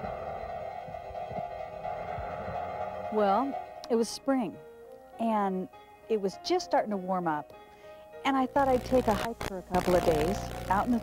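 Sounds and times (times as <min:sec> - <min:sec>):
soft low pulses: 0:00.0 - 0:03.9
sustained drone music: 0:00.0 - 0:04.0, 0:08.6 - 0:11.0.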